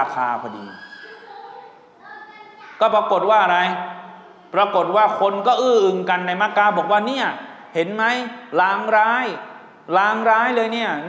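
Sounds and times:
man lecturing into a microphone: 0.0 - 0.9, 2.8 - 11.0.

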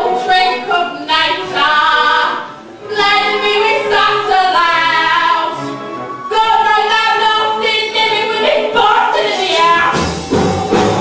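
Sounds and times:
several voices singing: 0.0 - 11.0.

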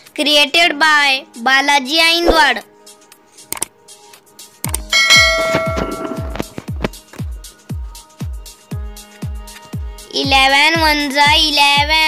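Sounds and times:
electronic music: 4.8 - 6.8
bright bell-like chime: 4.9 - 6.5
deep kick drum beat: 5.1 - 8.9.

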